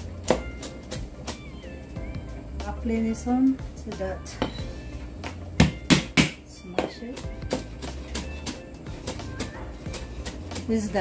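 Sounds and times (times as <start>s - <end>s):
soft background music: 0.0s - 11.0s
cleaver chopping on cutting board: 5.6s - 6.4s.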